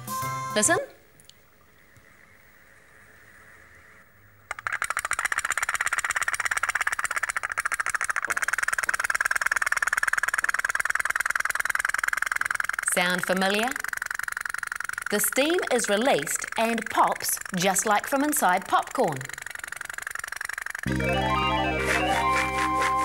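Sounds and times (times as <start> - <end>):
toy boat engine popping: 4.4 - 20.9.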